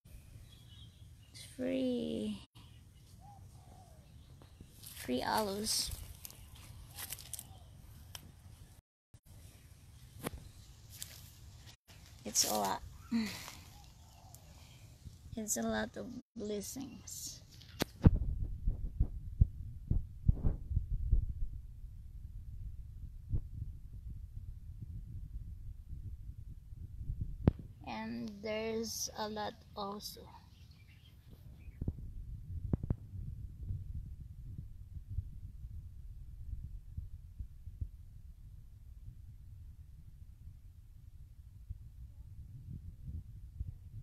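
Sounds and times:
microphone handling thumps: 17.9 - 21.6.

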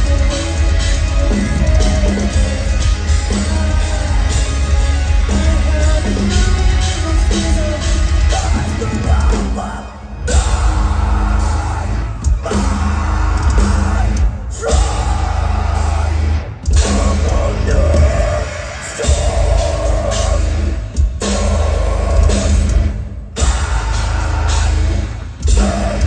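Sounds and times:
metal band playing live: 0.0 - 26.0.

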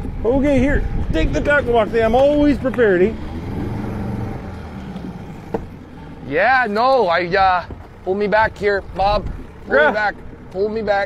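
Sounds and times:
outboard motor idling: 0.0 - 11.0.

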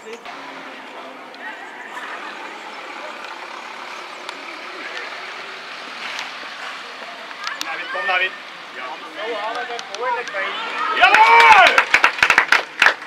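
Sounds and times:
distant voices: 0.0 - 13.0.

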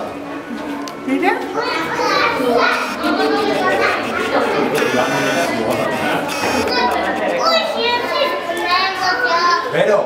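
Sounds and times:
children talking and calling out: 0.1 - 10.0.

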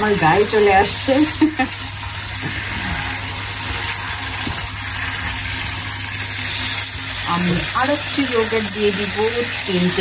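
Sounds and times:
food sizzling in a frying pan: 0.0 - 10.0
spatula stirring: 0.5 - 10.0.

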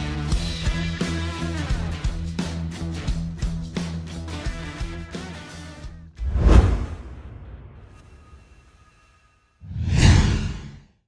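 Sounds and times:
whoosh sound effect: 9.6 - 10.9.

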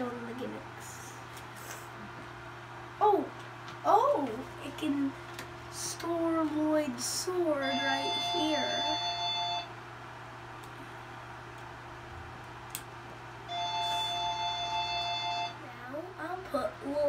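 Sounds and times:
low steady hum: 0.0 - 17.0
electronic chime: 13.5 - 15.6.

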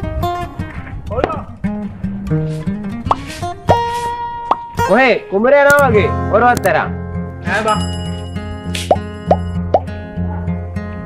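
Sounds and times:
background music with bass line: 0.0 - 11.0
rising plop sounds: 3.1 - 3.8, 4.4 - 4.8.

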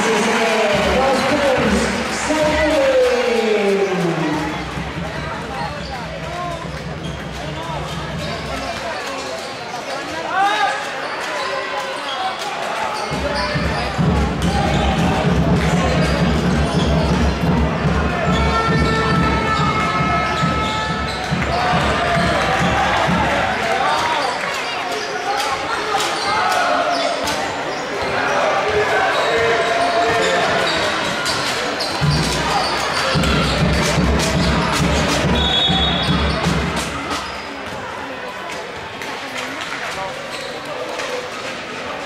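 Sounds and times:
spectators chattering: 0.0 - 42.0
referee's whistle: 35.3 - 36.4.

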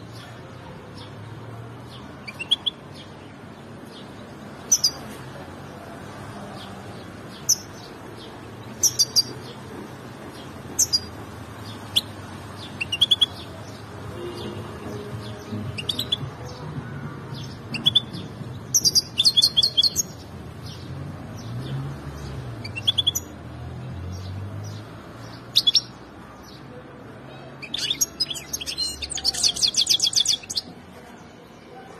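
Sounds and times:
finch chirping and singing: 1.8 - 5.2, 6.6 - 21.6, 22.2 - 23.5, 24.2 - 26.6, 27.6 - 30.8.

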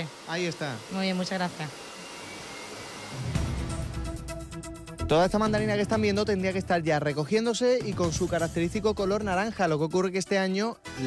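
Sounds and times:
hair dryer running: 0.0 - 4.6
music with deep bass: 3.3 - 7.2, 7.8 - 9.9.

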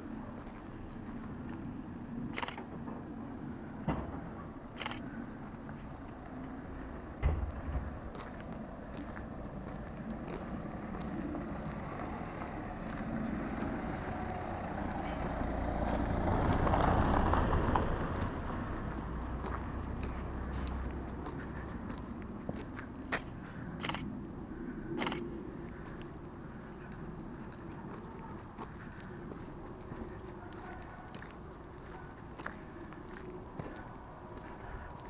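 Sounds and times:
wind rumble on microphone: 0.4 - 21.2
car driving past: 9.2 - 21.8.

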